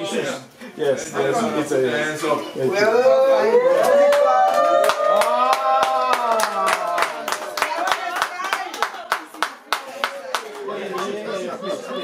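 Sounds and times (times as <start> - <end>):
group clapping rhythmically: 3.7 - 11.3.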